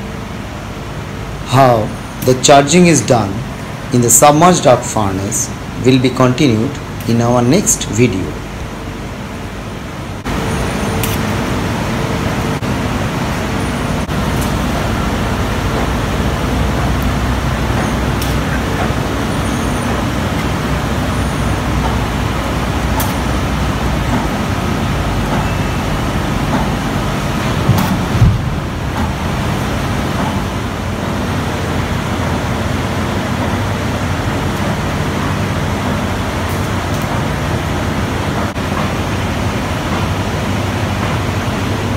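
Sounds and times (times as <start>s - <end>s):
low machinery rumble with hiss: 0.0s - 41.9s
sharp knocks: 26.5s - 29.2s.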